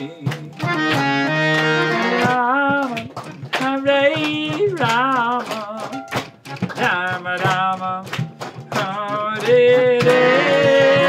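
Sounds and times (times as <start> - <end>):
man singing a devotional chant: 0.0 - 0.8, 2.2 - 6.0, 6.8 - 11.0.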